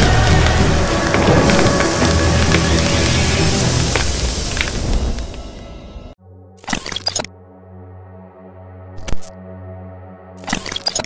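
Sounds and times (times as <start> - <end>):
dense crackling hiss: 0.0 - 5.6
heavy low rumble: 0.0 - 6.2
music: 0.0 - 11.0.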